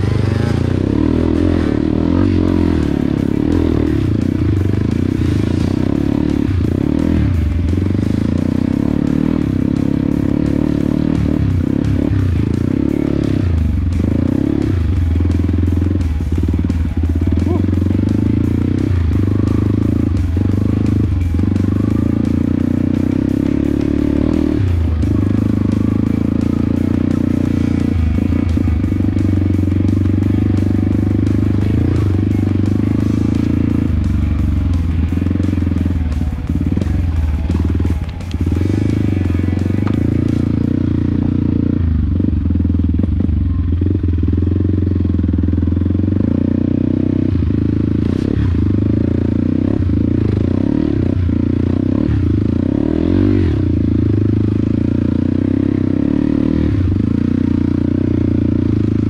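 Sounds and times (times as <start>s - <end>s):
motorbike engine running: 0.0s - 59.0s
music playing: 0.0s - 59.0s.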